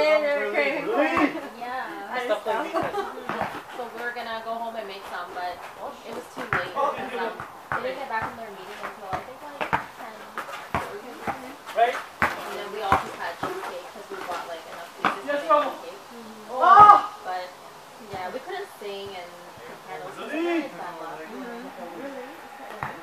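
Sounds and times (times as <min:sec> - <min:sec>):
indistinct voices talking: 0:00.0 - 0:23.0
basketball bouncing on hard court: 0:02.8 - 0:04.1, 0:06.1 - 0:15.4.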